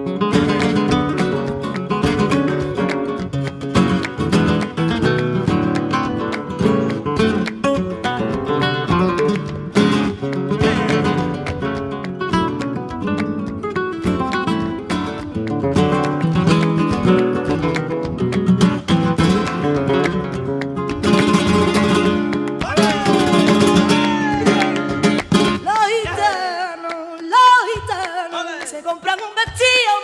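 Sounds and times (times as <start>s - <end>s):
strummed acoustic guitar flamenco: 0.0s - 30.0s.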